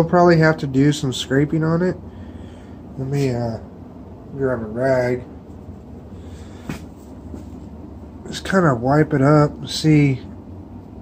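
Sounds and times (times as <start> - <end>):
low background hum: 0.0 - 11.0.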